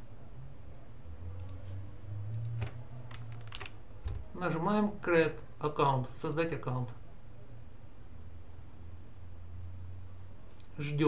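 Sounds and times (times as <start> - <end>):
low electrical hum: 0.0 - 11.0
computer keyboard clicks: 2.3 - 3.8.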